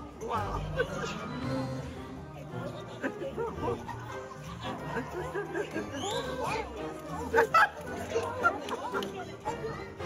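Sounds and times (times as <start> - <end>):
audience chatter: 0.0 - 10.0.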